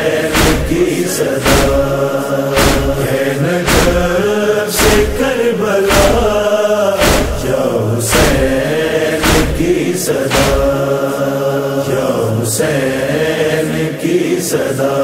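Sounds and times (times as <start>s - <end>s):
men chanting in chorus: 0.0s - 15.0s
steady beat thumps: 0.3s - 11.0s.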